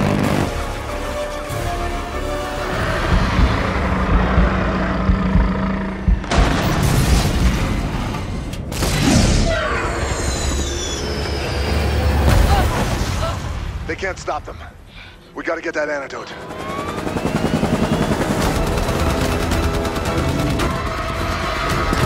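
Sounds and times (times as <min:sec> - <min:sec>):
dramatic orchestral music: 0:00.0 - 0:09.6, 0:15.4 - 0:22.0.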